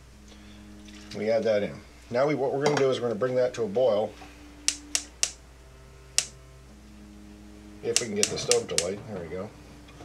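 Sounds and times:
faint steady hum: 0:00.0 - 0:10.0
gas stove igniter clicks: 0:04.7 - 0:05.4, 0:06.2 - 0:06.4, 0:07.9 - 0:09.0.

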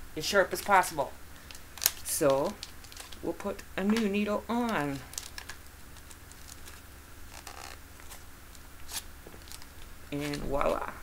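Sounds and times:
syringe plastic clicks and rustles: 0:01.4 - 0:10.5.

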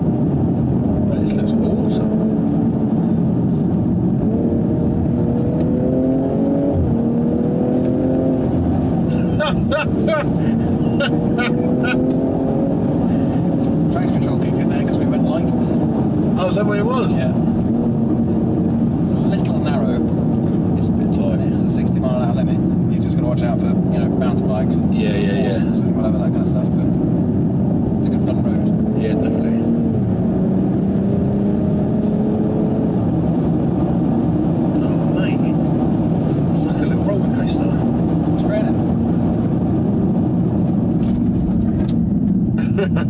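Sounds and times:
car engine revving: 0:00.0 - 0:43.0
tyre and road noise: 0:00.0 - 0:43.0.

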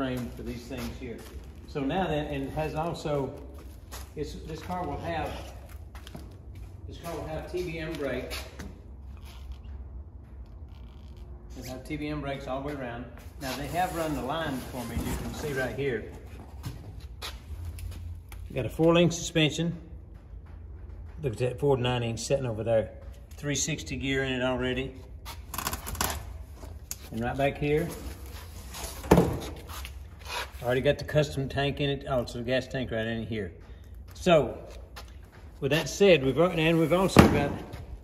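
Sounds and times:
low room hum: 0:00.0 - 0:38.0
steady low rumble: 0:17.0 - 0:25.2.

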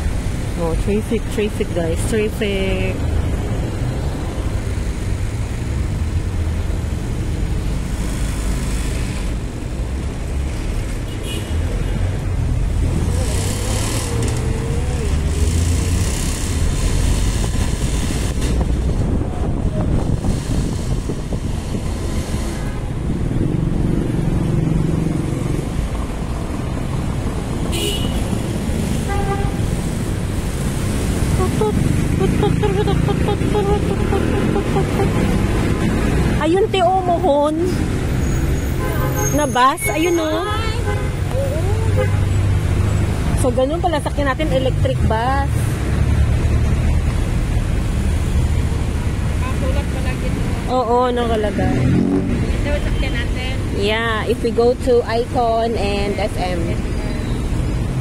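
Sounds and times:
traffic engines and road noise: 0:00.0 - 0:58.0
motorcycle engine: 0:12.4 - 0:25.9.

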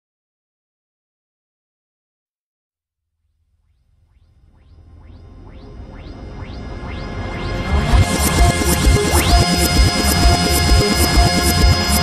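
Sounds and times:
low bass drone: 0:04.2 - 0:12.0
rising synth sweep: 0:04.3 - 0:12.0
electronic trance music: 0:04.4 - 0:12.0.

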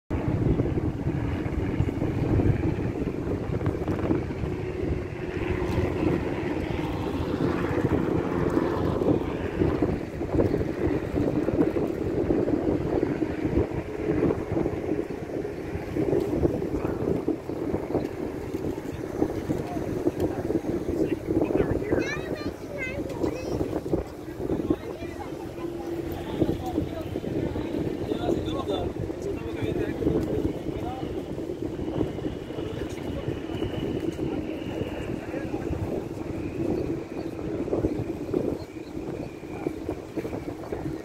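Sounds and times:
wind buffeting microphone: 0:00.1 - 0:41.0
murmur of voices: 0:00.4 - 0:41.0.

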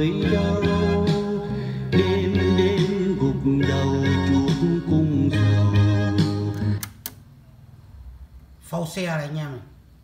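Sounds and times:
song with guitar from cassette: 0:00.0 - 0:07.0.

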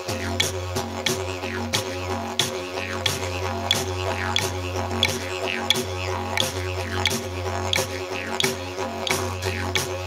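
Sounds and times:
didgeridoo droning: 0:00.0 - 0:10.0.

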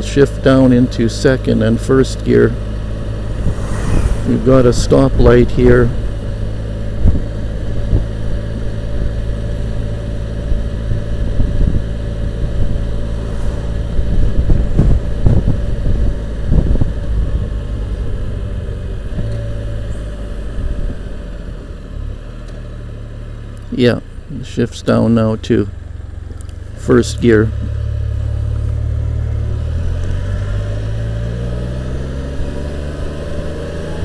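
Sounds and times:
wind buffeting on microphone: 0:03.2 - 0:08.2, 0:10.8 - 0:19.3.

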